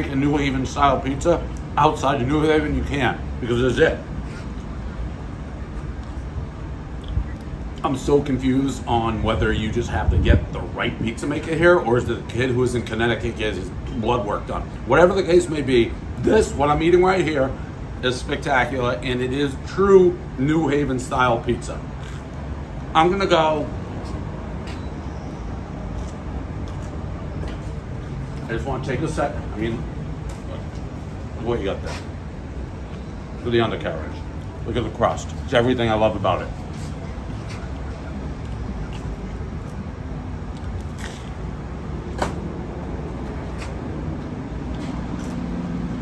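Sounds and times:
street background rumble: 0:00.0 - 0:46.0.

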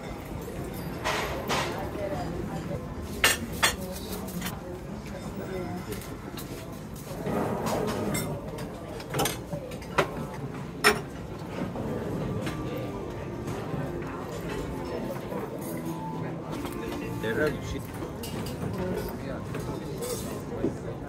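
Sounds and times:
background chatter: 0:00.0 - 0:21.0
crockery and cutlery clinking: 0:00.0 - 0:21.0.

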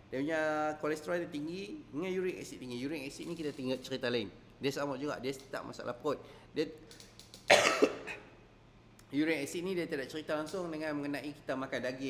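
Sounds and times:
man coughing: 0:07.5 - 0:08.3.

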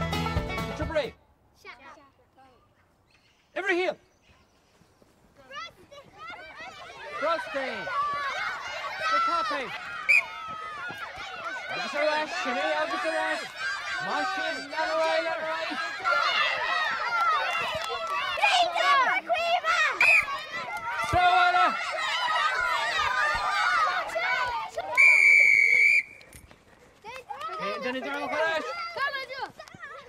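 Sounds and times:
children shouting: 0:05.5 - 0:25.8, 0:27.2 - 0:30.0
shrill whistle blast: 0:10.1 - 0:10.3, 0:20.0 - 0:20.3, 0:24.9 - 0:26.3.

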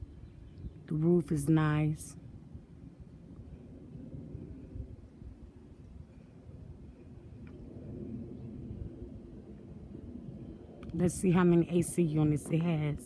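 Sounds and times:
faint low rumble: 0:00.0 - 0:13.0.

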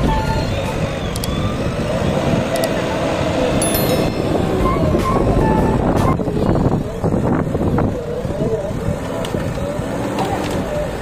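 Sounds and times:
people's voices: 0:01.7 - 0:11.0.

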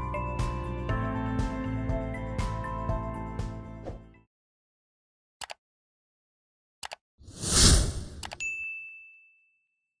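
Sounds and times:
mouse clicks: 0:06.8 - 0:07.0, 0:08.0 - 0:08.4
whoosh: 0:07.3 - 0:08.4
notification bell ding: 0:08.4 - 0:09.9.

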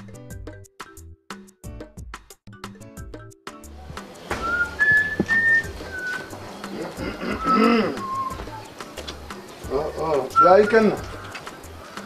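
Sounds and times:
person whistling a tune: 0:04.4 - 0:06.4, 0:07.2 - 0:08.6, 0:10.3 - 0:11.2
call with wavering pitch: 0:07.1 - 0:08.4.

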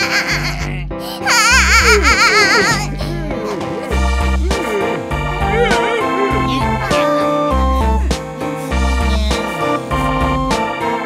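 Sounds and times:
young child crying: 0:00.0 - 0:03.9, 0:08.6 - 0:09.8
background music with bass line: 0:01.6 - 0:11.0.

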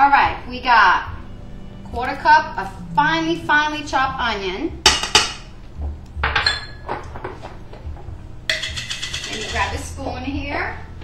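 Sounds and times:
kitchenware clinking on glass bowl: 0:08.5 - 0:09.9.

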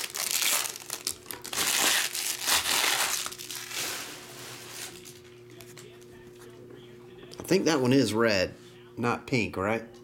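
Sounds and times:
foil wrapper crinkling: 0:00.0 - 0:05.2.

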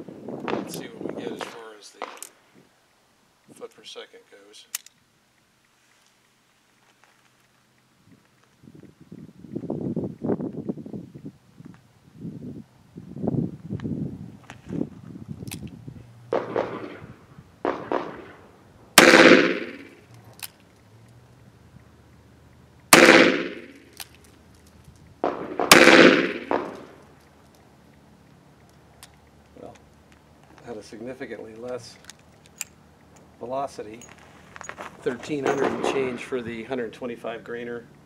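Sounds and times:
quiet uneven handling sounds: 0:00.4 - 0:11.9, 0:23.8 - 0:25.3, 0:26.8 - 0:38.0
revolver gunshots: 0:16.3 - 0:20.1, 0:22.9 - 0:24.0, 0:25.2 - 0:27.0, 0:35.4 - 0:36.4.

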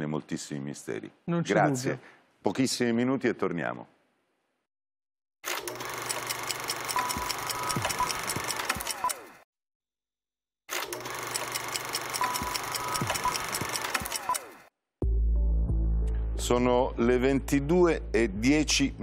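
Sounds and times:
rapid mechanical rhythm: 0:05.7 - 0:09.3, 0:10.8 - 0:14.6.

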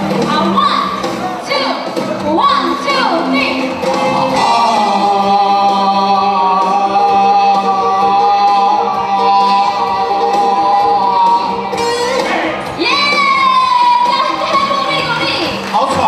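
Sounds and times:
live band playing: 0:00.0 - 0:16.0
man singing into microphone: 0:04.4 - 0:11.6.

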